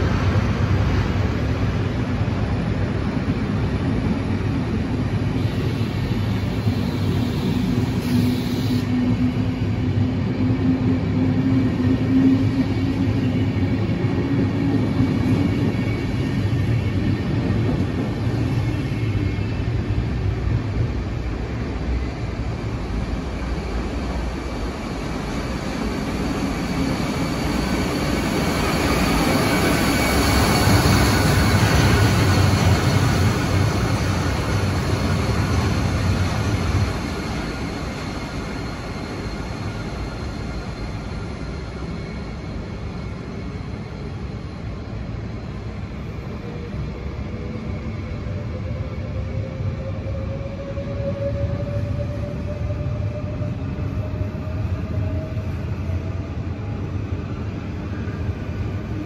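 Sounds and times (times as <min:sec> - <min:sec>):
electric locomotive whine: 0:00.0 - 0:59.0
train hum: 0:00.0 - 0:59.0.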